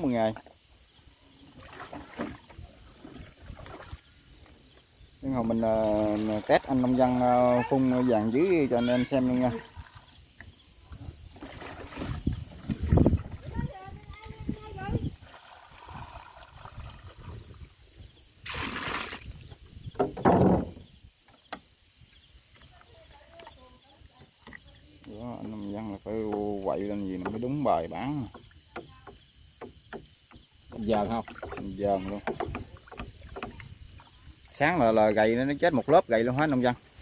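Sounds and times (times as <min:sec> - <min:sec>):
liquid pouring and splashing: 0:01.5 - 0:04.1, 0:05.3 - 0:10.2, 0:10.8 - 0:17.7, 0:18.4 - 0:19.5.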